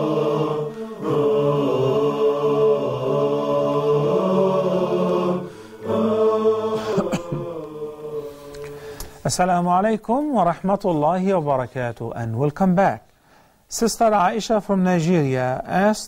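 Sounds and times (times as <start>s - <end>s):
voices singing unaccompanied: 0.0s - 9.2s.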